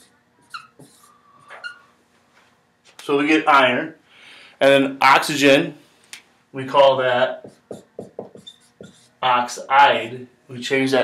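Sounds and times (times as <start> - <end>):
marker squeaking on whiteboard: 0.0 - 1.9, 7.4 - 9.2.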